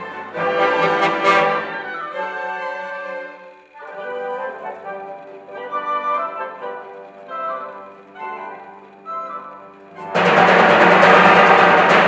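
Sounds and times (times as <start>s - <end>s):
symphony orchestra playing: 0.0s - 12.0s.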